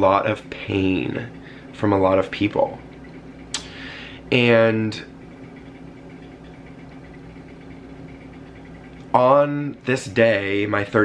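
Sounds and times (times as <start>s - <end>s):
low room hum with faint hiss: 0.0s - 11.0s.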